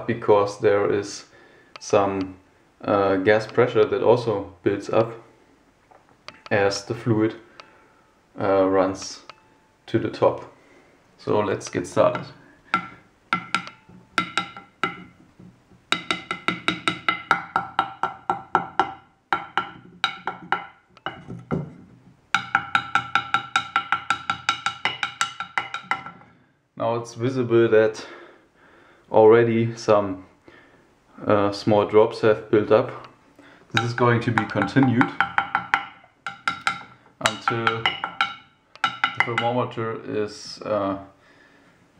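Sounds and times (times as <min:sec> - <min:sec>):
glass thermometer knocking on wood: 0:12.1 - 0:26.2, 0:33.8 - 0:39.5.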